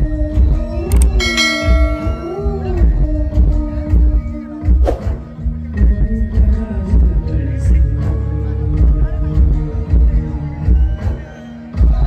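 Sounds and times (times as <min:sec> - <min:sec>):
music with singing: 0:00.0 - 0:12.0
bright bell chime: 0:01.0 - 0:02.8.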